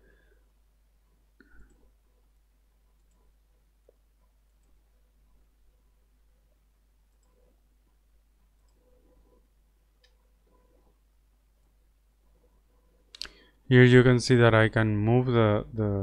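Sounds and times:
computer mouse clicks: 0:02.9 - 0:04.8, 0:07.1 - 0:07.4, 0:08.5 - 0:08.9, 0:10.0 - 0:10.6.

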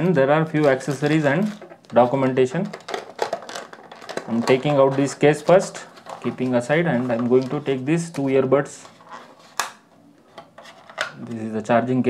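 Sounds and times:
hands rubbing plastic tray: 0:00.5 - 0:09.7.

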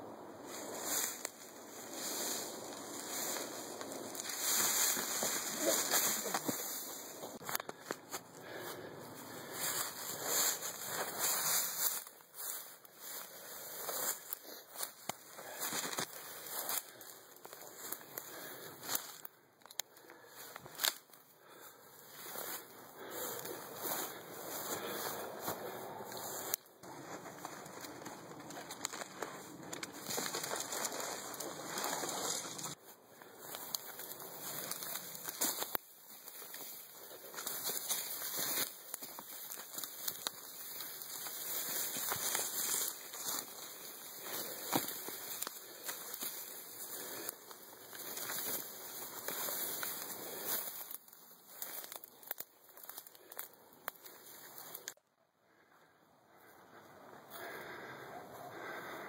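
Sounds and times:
dry grass rustling and crackling: 0:00.0 - 0:55.8, 0:56.4 - 0:59.0.

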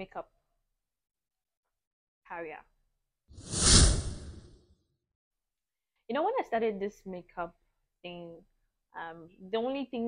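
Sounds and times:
whoosh sound effect: 0:03.4 - 0:04.6.

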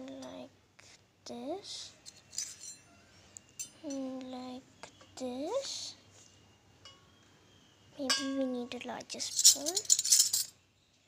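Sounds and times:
metal utensils clinking: 0:02.3 - 0:02.8, 0:09.2 - 0:10.5.

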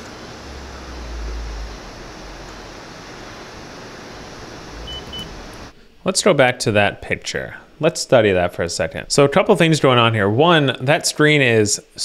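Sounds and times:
low rumble: 0:00.0 - 0:05.7
steady hiss: 0:00.0 - 0:12.0
short high beeps: 0:04.8 - 0:05.3.

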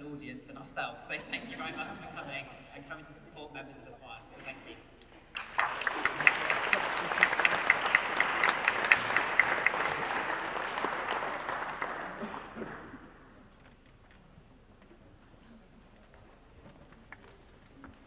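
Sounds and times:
crowd clapping: 0:05.3 - 0:13.6.

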